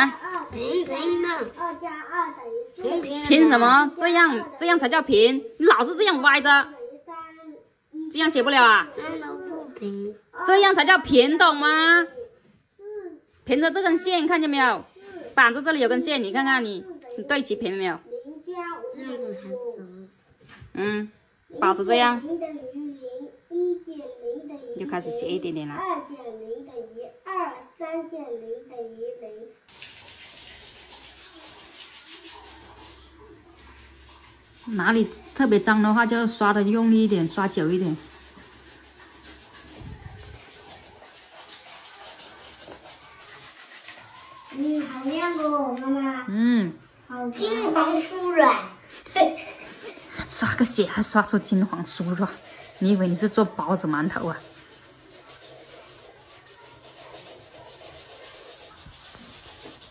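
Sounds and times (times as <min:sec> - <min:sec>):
brushes scrubbing sneakers: 0:29.7 - 0:45.6, 0:49.2 - 0:59.9.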